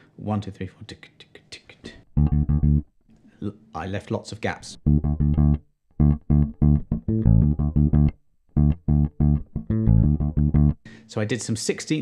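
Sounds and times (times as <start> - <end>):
electric bass guitar runs: 2.2 - 2.8, 4.8 - 10.8.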